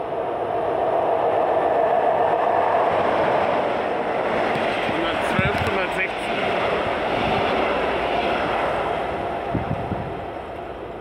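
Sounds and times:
train wheels rumbling on rails: 0.0 - 11.0.

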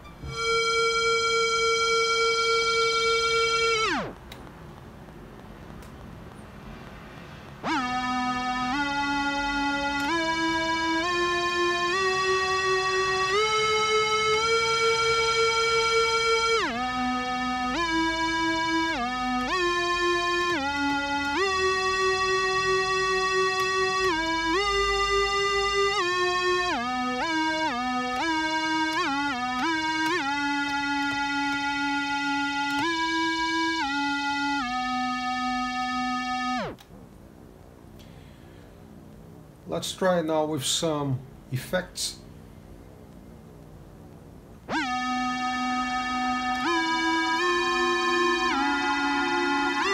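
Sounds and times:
tape synth string notes: 0.0 - 4.3, 7.6 - 36.8, 44.7 - 49.9.

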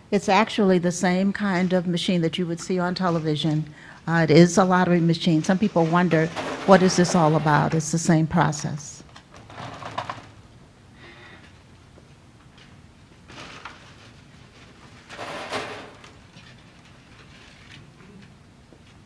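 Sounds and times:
lottery balls clattering: 15.0 - 16.4.

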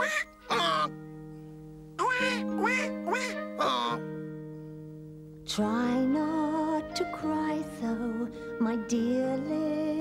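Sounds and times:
cartoon ducklings quacking: 0.0 - 0.9, 2.0 - 4.0
background music chords: 0.0 - 10.0.

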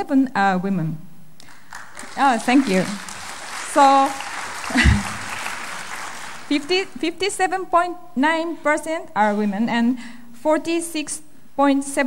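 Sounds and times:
audience applauding: 1.4 - 7.0.

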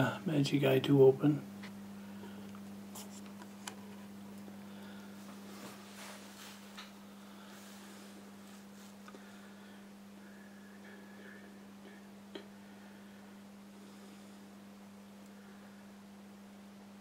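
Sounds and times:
low electrical hum: 0.0 - 17.0
soft rustle: 5.2 - 6.8, 7.4 - 9.1.

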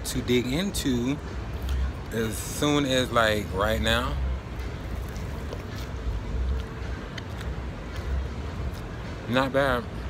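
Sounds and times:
faint crunches and mouth clicks: 5.0 - 8.9.

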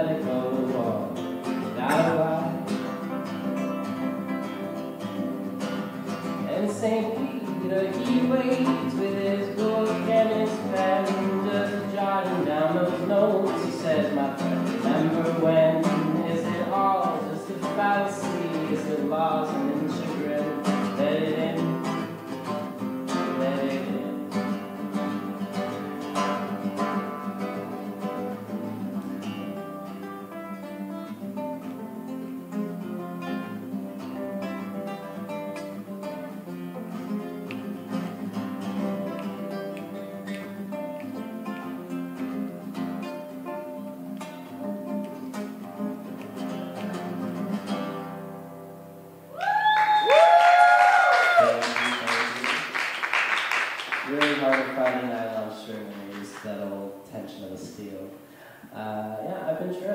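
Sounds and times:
acoustic guitar playing: 0.0 - 50.0, 50.6 - 59.9
loud whooping cheer: 49.3 - 52.8.

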